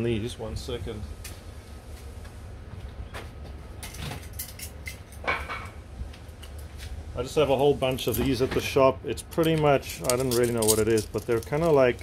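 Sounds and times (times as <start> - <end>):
steady low hum: 0.0 - 12.0
small tools clicking and rattling: 3.8 - 5.3, 9.3 - 12.0.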